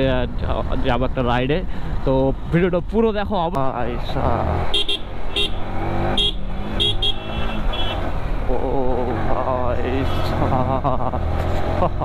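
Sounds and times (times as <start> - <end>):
wind and road rumble: 0.0 - 12.0
vehicle horn toots: 4.7 - 8.0.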